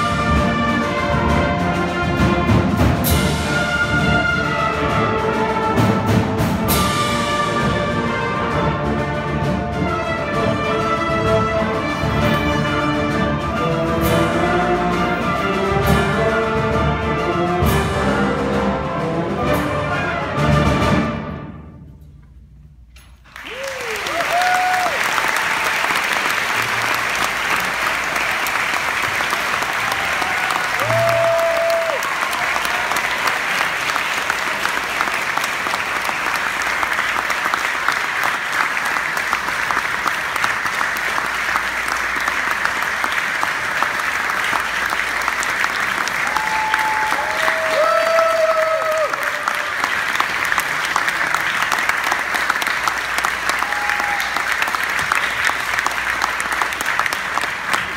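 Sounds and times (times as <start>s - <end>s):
audience applauding: 23.3s - 57.9s.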